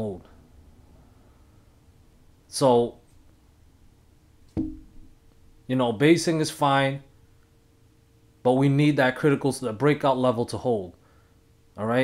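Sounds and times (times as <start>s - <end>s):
thump with low ring: 4.6s - 5.1s.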